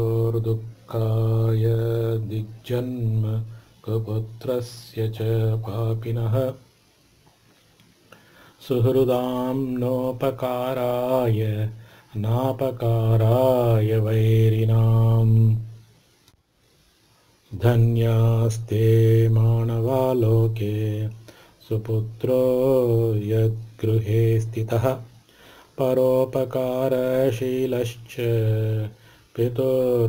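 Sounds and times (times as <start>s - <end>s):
man chanting: 0.0s - 6.6s, 8.6s - 15.7s, 17.5s - 25.1s, 25.8s - 30.0s.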